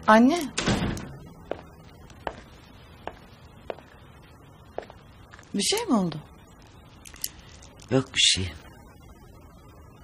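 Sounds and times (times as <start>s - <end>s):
footsteps on wooden floor: 1.4s - 4.0s, 4.8s - 5.5s.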